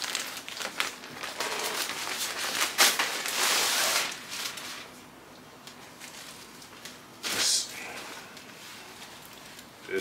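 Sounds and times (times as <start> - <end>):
plastic packaging crinkling: 0.0 - 5.0, 5.6 - 7.6.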